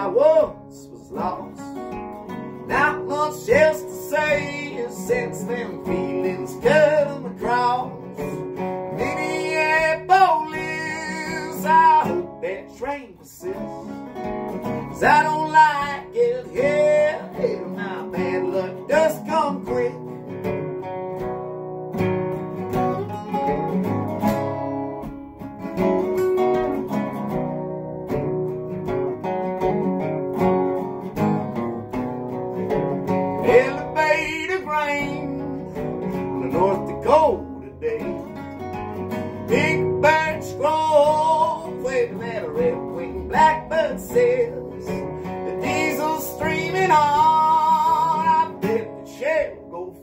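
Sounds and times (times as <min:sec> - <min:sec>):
acoustic guitar: 0:00.0 - 0:50.0
resonator guitar: 0:00.0 - 0:50.0.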